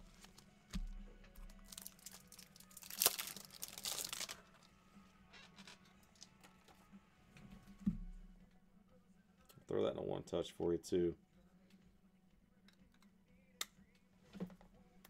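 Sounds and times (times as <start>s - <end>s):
plastic packaging crinkling: 1.4s - 4.4s
soft thump: 7.8s - 8.3s.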